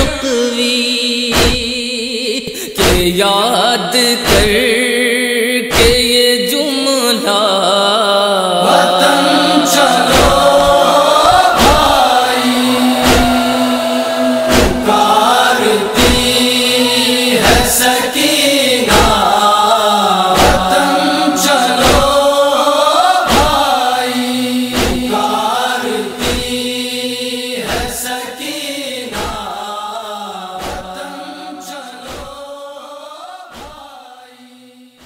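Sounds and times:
voices chanting a lament: 0.0 - 35.0
rhythmic chest-beating thumps: 8.9 - 23.8, 24.6 - 25.2, 26.2 - 26.8, 27.7 - 28.1, 30.6 - 31.0.

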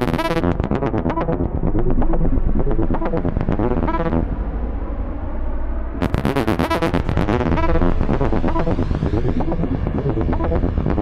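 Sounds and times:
synthesizer tones and pulses: 0.0 - 4.4, 6.0 - 11.0
deep low drone: 0.0 - 11.0.

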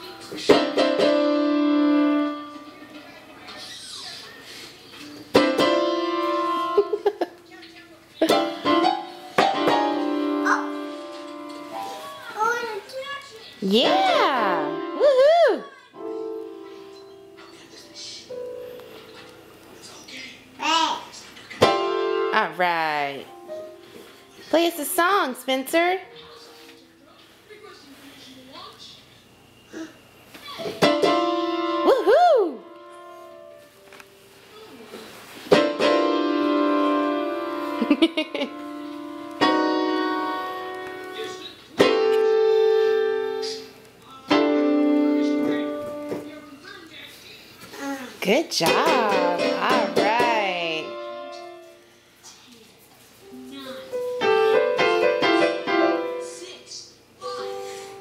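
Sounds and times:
digital piano chords: 0.0 - 2.7, 5.3 - 7.0, 8.3 - 12.3, 13.8 - 15.2, 21.6 - 22.5, 30.8 - 31.9, 35.5 - 43.7, 44.3 - 46.1, 54.0 - 56.4.

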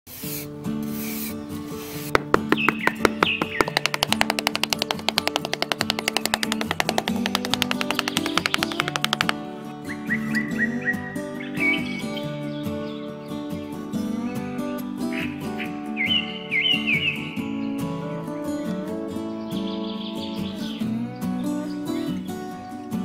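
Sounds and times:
background music: 0.8 - 23.0
small hammer tapping: 2.1 - 9.4
birds chirping: 2.1 - 14.5, 15.1 - 17.8.

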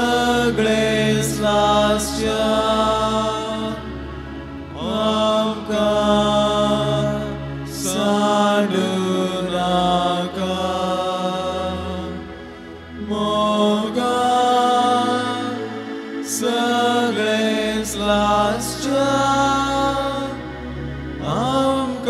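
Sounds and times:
slow hymn singing: 0.0 - 22.0
sustained instrumental chords: 0.0 - 22.0.

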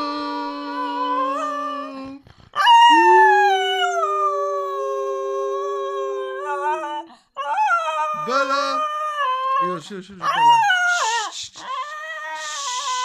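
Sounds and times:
dog howling: 0.0 - 13.0.

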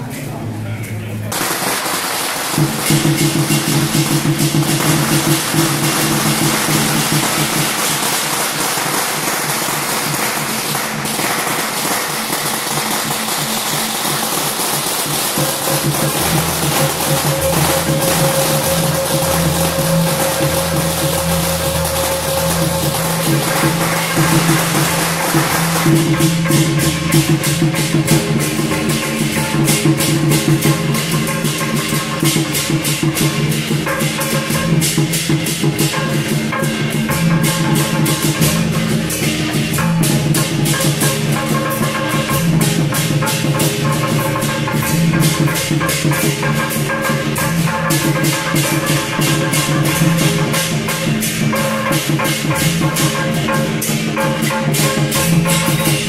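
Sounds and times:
processional music: 0.0 - 56.0
firecrackers crackling: 1.3 - 56.0.

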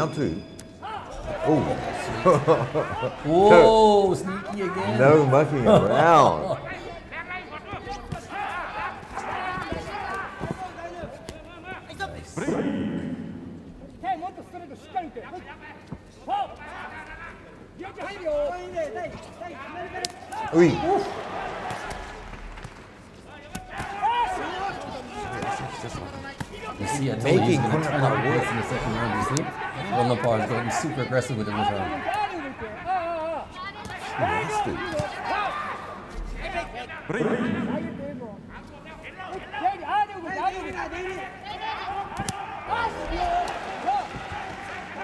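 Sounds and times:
men calling and talking: 0.0 - 45.0.

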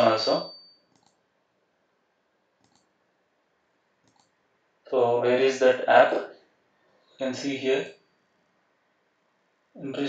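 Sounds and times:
computer mouse clicks: 0.9 - 1.2, 2.6 - 3.0, 4.0 - 4.4.

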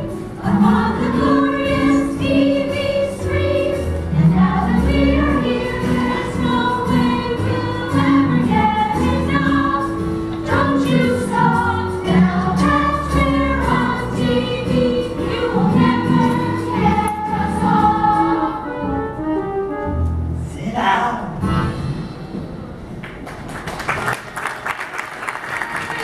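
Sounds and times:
chorus singing: 0.0 - 19.0.

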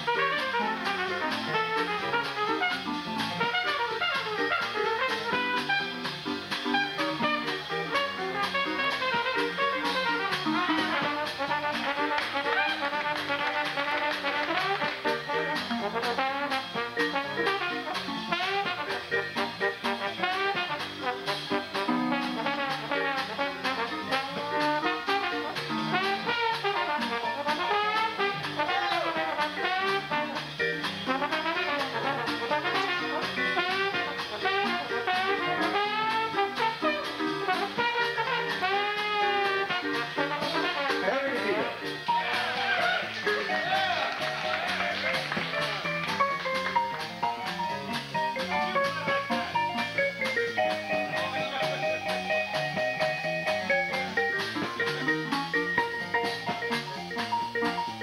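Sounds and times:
jazz band playing: 0.0 - 58.0
steady drum beat: 0.0 - 58.0.

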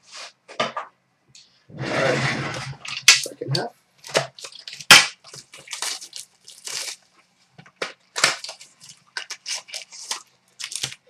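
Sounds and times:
card wrappers tearing and crinkling: 4.0 - 7.1, 7.7 - 11.0.

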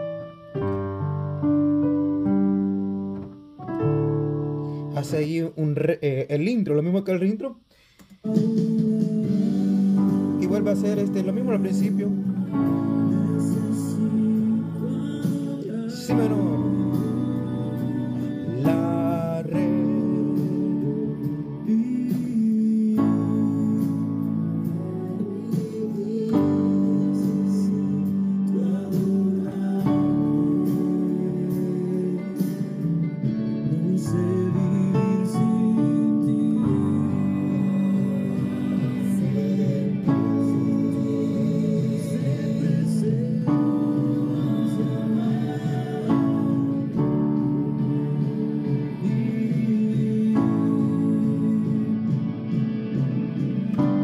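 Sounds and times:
piano chords: 0.0 - 6.6, 8.3 - 54.0
person singing: 7.2 - 54.0.

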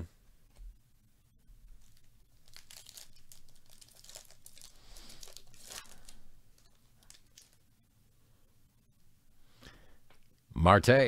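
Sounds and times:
plastic wrapper tearing and crinkling: 1.8 - 7.6.

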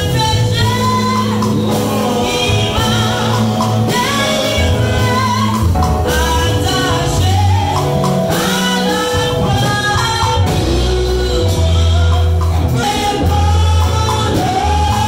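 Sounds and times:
electronic keyboard bass notes: 0.0 - 15.0
woman singing gospel song: 0.0 - 15.0.

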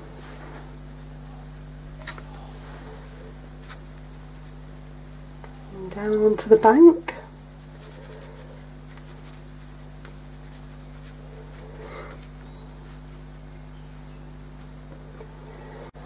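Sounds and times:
steady low hum: 0.0 - 16.0
brush dabbing paint onto paper: 2.6 - 5.0, 6.0 - 13.8, 14.4 - 14.9.

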